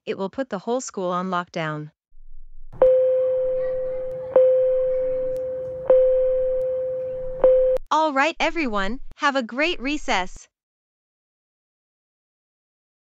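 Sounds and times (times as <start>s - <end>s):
school bell chime: 2.8s - 7.8s.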